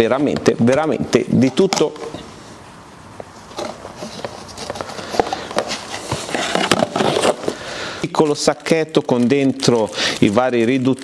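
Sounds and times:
plastic packaging rustling: 3.4s - 11.0s.

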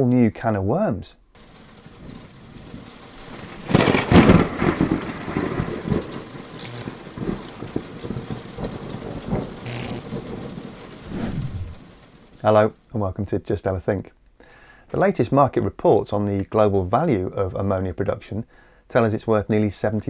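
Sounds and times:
thunder rumble and crash: 1.4s - 12.5s
rain-like crackling: 1.4s - 13.0s
short hisses: 11.0s - 11.9s.

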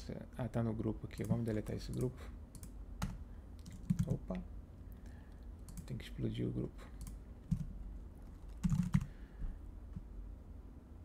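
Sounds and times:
computer keyboard typing: 1.2s - 4.2s, 5.6s - 5.9s, 6.9s - 9.1s.

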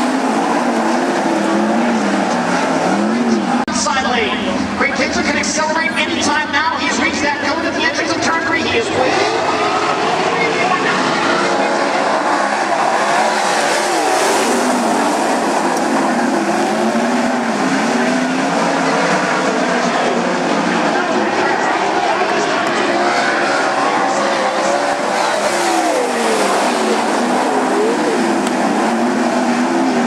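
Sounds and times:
race car engines at high revs: 0.0s - 30.0s.

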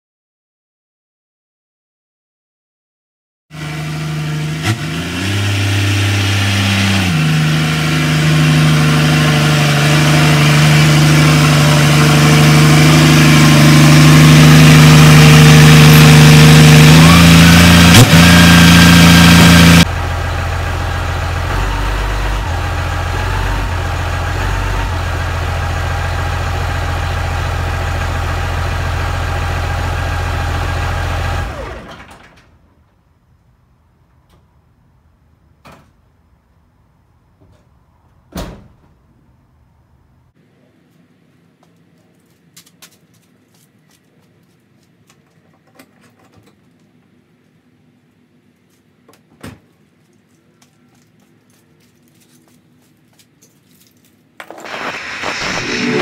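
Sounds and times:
truck engine running: 3.6s - 32.3s, 54.5s - 56.0s.

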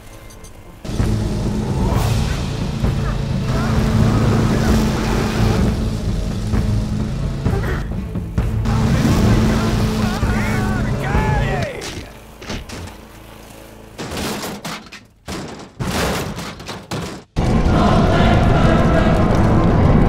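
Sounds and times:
lawnmower engine droning: 0.1s - 15.3s
sharp knocks: 14.0s - 17.4s.

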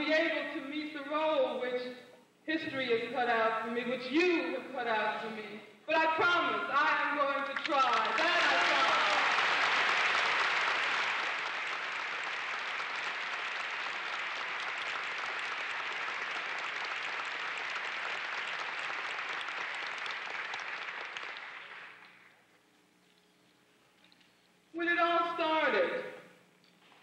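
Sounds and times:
large audience applauding: 7.6s - 22.4s.

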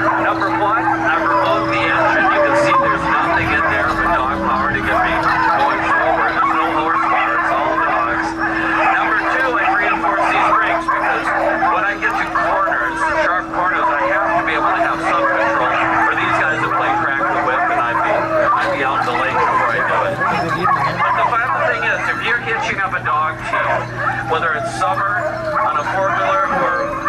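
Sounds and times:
dogs yelping and barking: 0.0s - 27.0s
people chattering: 0.0s - 27.0s
steady low hum: 0.0s - 27.0s.

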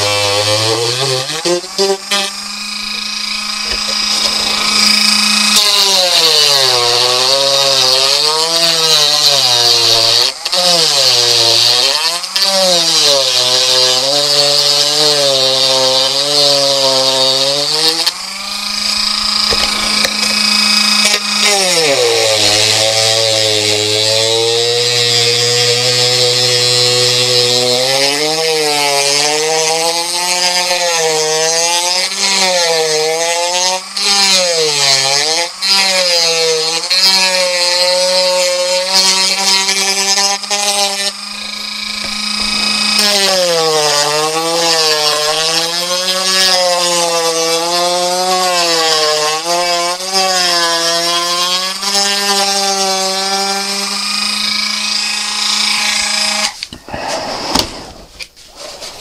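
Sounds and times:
rotary tool grinding fiberglass: 0.0s - 59.0s.

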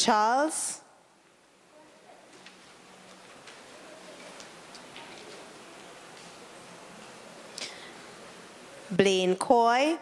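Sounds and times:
low murmur of room: 0.0s - 10.0s
faint clicks and taps: 2.3s - 5.4s.

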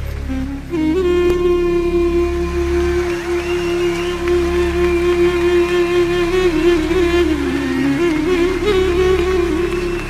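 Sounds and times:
low musical accompaniment: 0.0s - 10.0s
clarinet holding long note: 0.1s - 10.0s.

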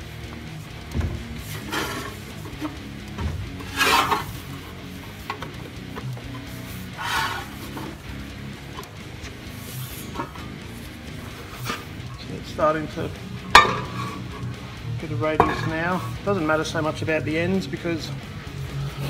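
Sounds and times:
background music: 0.0s - 19.0s
sheet steel scraping on a bar: 1.4s - 2.8s, 3.6s - 8.0s, 8.7s - 12.2s, 13.5s - 14.5s.

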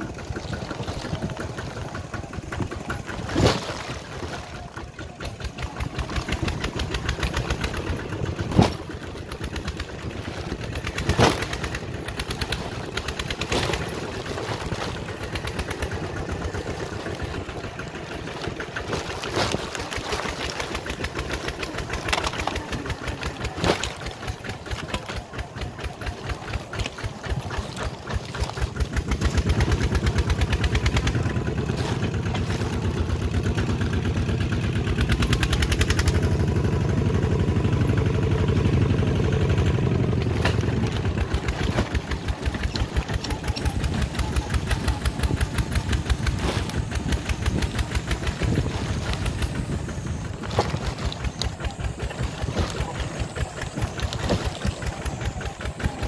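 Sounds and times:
knocks and rattles: 0.0s - 36.6s
diesel engine chugging: 0.0s - 56.0s.

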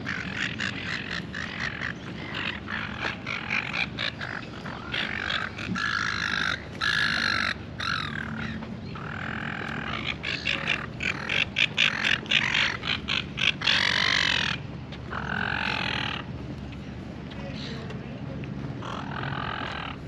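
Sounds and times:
gulls squawking: 0.0s - 16.4s, 18.8s - 20.0s.

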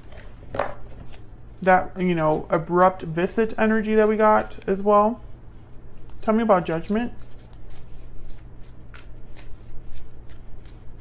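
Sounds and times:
cards being shuffled: 7.2s - 11.0s.

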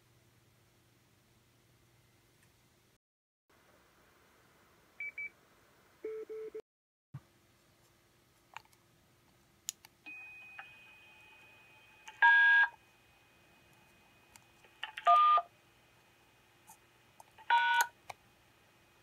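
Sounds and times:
faint high tone and hiss: 10.0s - 14.8s.

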